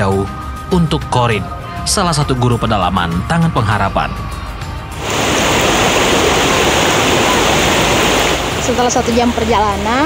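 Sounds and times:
stream water rushing: 0:04.9 - 0:10.0.

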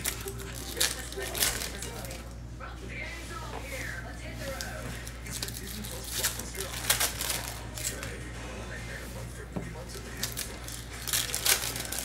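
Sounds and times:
plastic packaging crinkling: 0:00.0 - 0:02.3, 0:04.5 - 0:08.2, 0:09.8 - 0:12.0.

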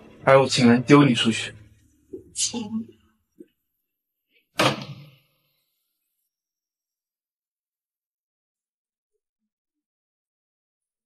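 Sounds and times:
door slamming: 0:04.6 - 0:05.2.

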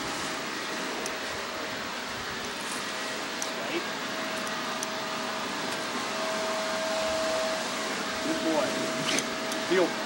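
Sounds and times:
constant humming tone: 0:00.0 - 0:10.0
steady drone: 0:00.0 - 0:10.0.

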